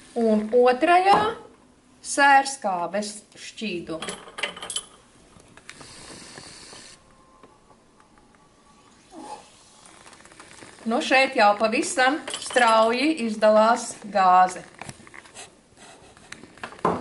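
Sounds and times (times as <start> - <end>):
glassware clinking: 4.0 - 5.0, 12.2 - 13.0
faint hiss: 5.7 - 7.1.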